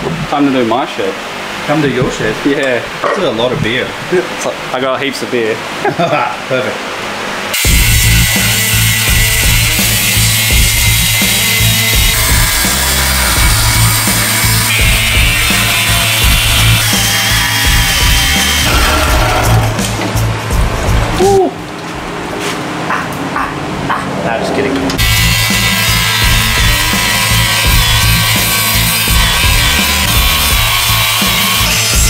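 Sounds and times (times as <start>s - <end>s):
angle grinder cutting steel: 7.5s - 20.0s, 25.0s - 32.0s
music with a steady beat: 17.6s - 21.2s, 25.0s - 32.0s.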